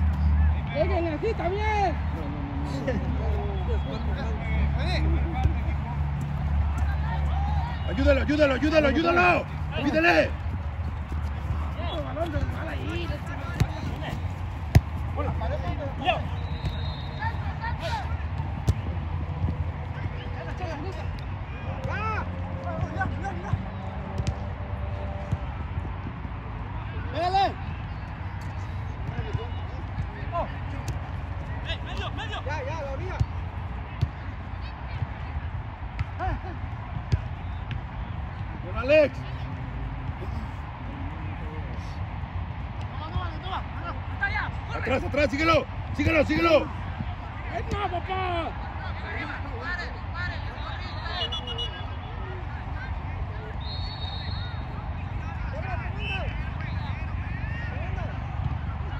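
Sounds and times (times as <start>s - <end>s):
players shouting: 0.0s - 25.9s, 26.6s - 58.9s
ball kick thuds: 9.8s - 16.8s, 18.3s - 19.6s, 24.1s - 24.4s.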